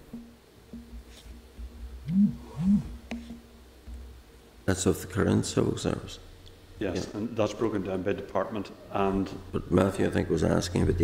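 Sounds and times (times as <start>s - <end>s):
man humming low: 2.0s - 3.1s.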